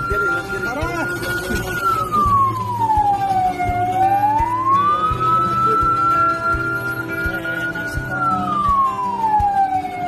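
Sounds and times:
fire engine siren wailing: 0:00.0 - 0:10.0.

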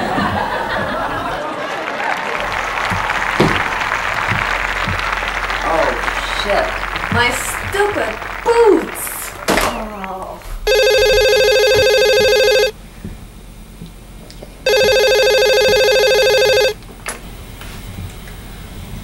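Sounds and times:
telephone trilling ring: 0:10.7 - 0:12.8, 0:14.7 - 0:16.8.

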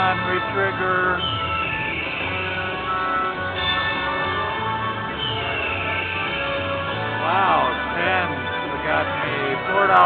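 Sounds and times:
electronic slot machine music: 0:00.0 - 0:10.0
high electronic tone: 0:00.0 - 0:10.0.

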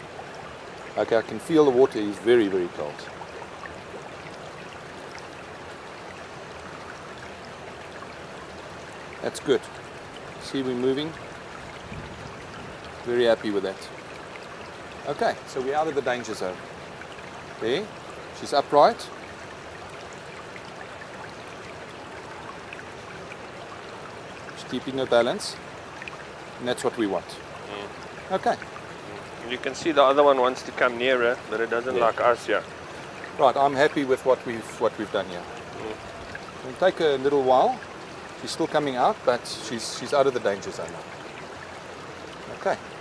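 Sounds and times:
trickling running water: 0:00.0 - 0:43.0.

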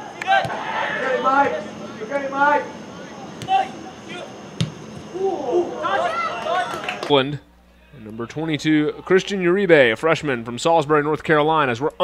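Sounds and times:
players shouting: 0:00.0 - 0:07.2
ball being kicked: 0:04.6 - 0:05.1.

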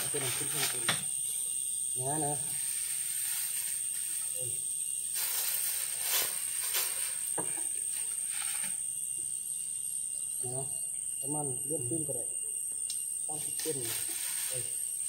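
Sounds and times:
dry leaf thatch rustling: 0:00.0 - 0:00.9, 0:02.6 - 0:04.4, 0:05.1 - 0:08.8, 0:13.5 - 0:14.8.

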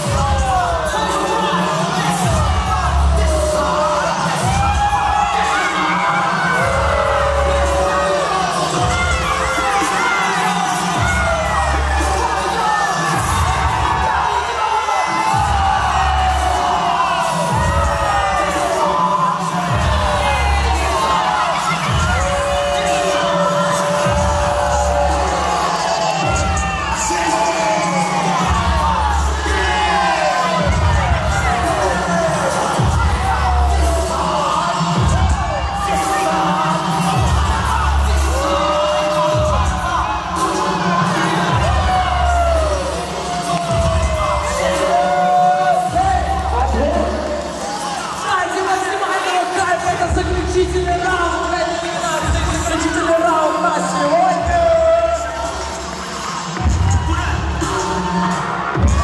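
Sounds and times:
crowd shouting and cheering: 0:00.0 - 0:59.0
heavy dance beat with deep bass: 0:00.0 - 0:59.0.

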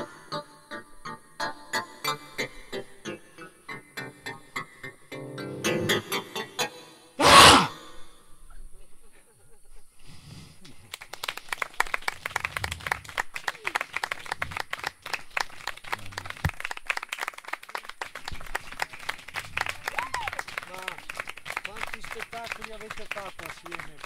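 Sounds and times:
voices calling out: 0:07.2 - 0:07.7
audience clapping: 0:10.8 - 0:24.0.

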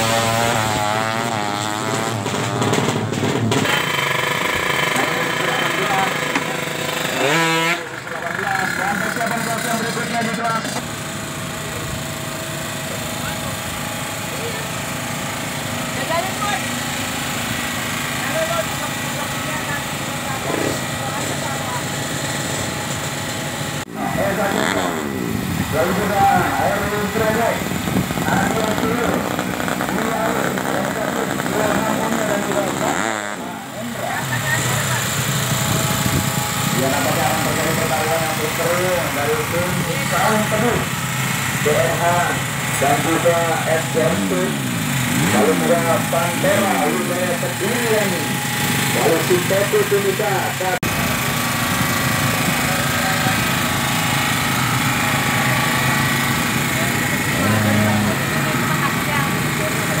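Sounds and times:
engine revving: 0:00.0 - 1:00.0
motorcycle pit background noise: 0:00.0 - 1:00.0
voices talking: 0:04.7 - 0:10.9, 0:17.8 - 0:51.3, 0:52.0 - 1:00.0.

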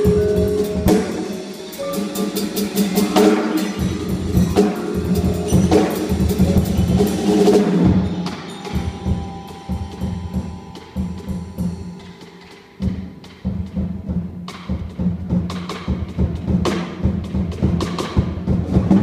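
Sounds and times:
vibraphone notes ringing: 0:00.0 - 0:13.9.

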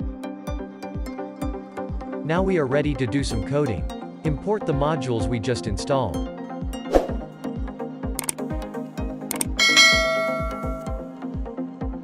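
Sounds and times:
sharp click: 0:08.2 - 0:08.4, 0:09.3 - 0:10.9
notification bell ding: 0:09.6 - 0:11.1.

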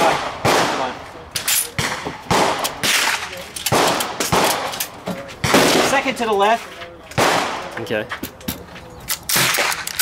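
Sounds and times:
rifle shot: 0:00.0 - 0:01.0, 0:01.8 - 0:04.7, 0:07.2 - 0:07.7.

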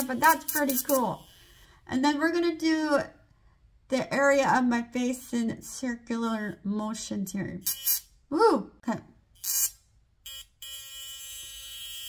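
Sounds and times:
electric skin wand buzzing: 0:00.0 - 0:01.7, 0:07.6 - 0:08.1, 0:09.4 - 0:12.0.

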